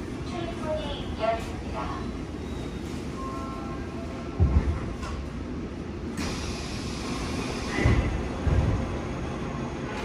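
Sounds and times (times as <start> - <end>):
electric train rumbling in tunnel: 0.0 - 10.0.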